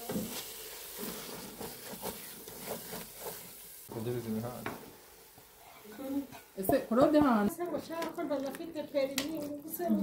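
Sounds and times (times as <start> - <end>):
food sizzling: 0.0 - 10.0
wooden spoon stirring in pot: 0.0 - 10.0.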